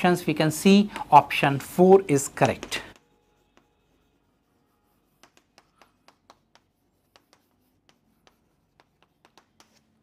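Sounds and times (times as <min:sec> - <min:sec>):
chalk tapping and scraping on board: 0:00.9 - 0:10.0.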